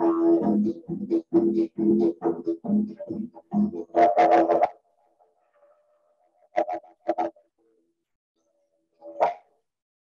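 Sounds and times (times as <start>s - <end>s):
didgeridoo rhythmic drone: 0.0s - 4.8s, 6.5s - 7.4s.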